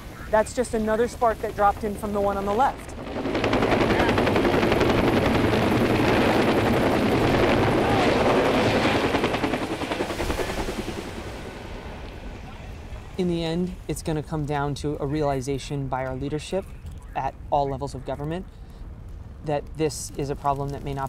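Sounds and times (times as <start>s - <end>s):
helicopter rotor blades chopping: 0.0s - 12.9s.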